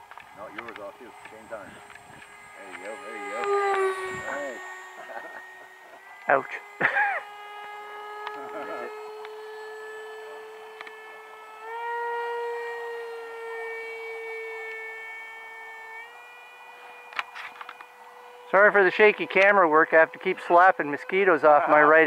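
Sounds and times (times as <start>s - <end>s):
electric ducted fan whine: 0.0s - 22.0s.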